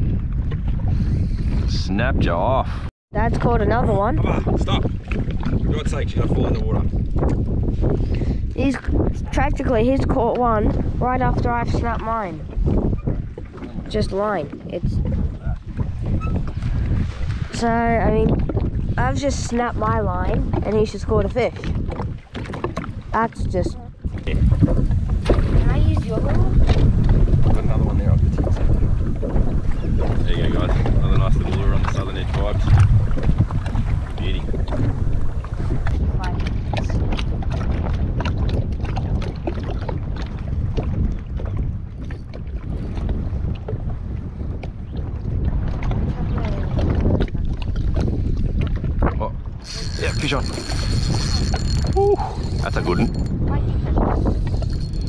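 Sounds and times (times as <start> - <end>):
waves slapping plastic hull: 0.0 - 2.2, 3.2 - 55.0
wind buffeting microphone: 0.0 - 55.0.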